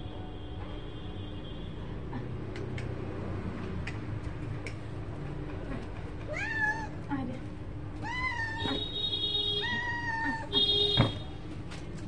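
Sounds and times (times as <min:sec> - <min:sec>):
cat meowing: 0:06.3 - 0:07.0, 0:08.0 - 0:08.8, 0:09.6 - 0:10.6.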